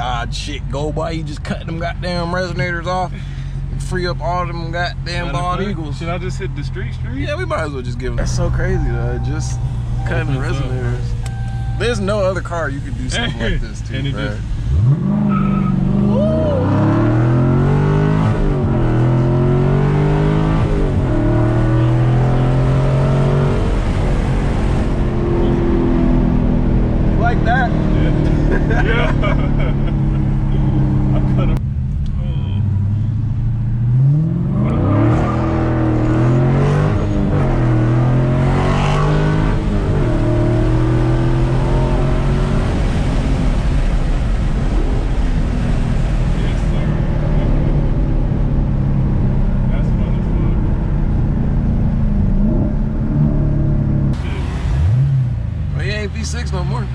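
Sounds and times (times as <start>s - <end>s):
car engine accelerating through gears: 1.3s - 56.9s.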